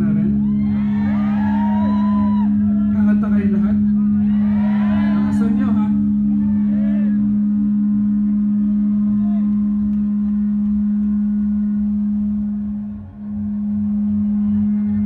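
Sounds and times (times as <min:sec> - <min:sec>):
loud low drone: 0:00.0 - 0:15.0
soft pulsing low beat: 0:00.0 - 0:15.0.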